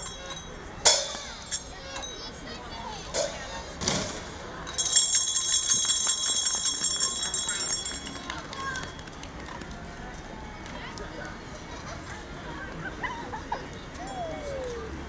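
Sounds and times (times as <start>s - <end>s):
metal bells chiming: 0.0s - 2.4s, 4.7s - 8.4s.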